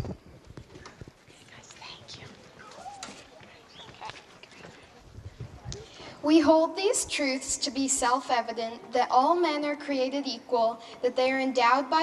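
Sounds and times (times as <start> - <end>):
faint background voices: 0.0 - 6.7.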